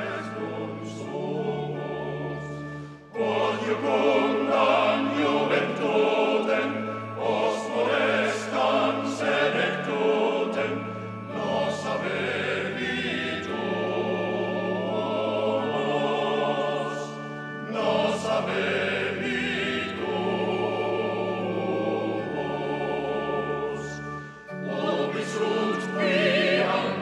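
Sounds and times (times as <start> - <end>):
choir singing a hymn: 0.0 - 27.0
sustained instrumental accompaniment: 0.0 - 27.0.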